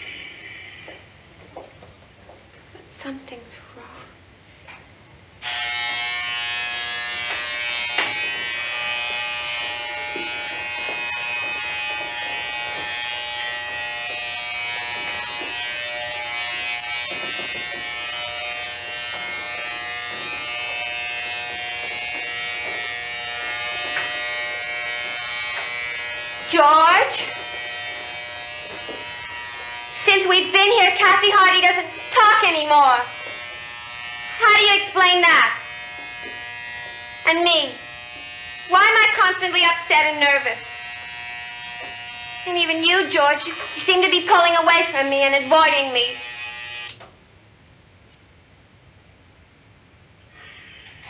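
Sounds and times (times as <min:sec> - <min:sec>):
electric shaver buzzing: 0:05.4 - 0:47.1, 0:50.3 - 0:51.0.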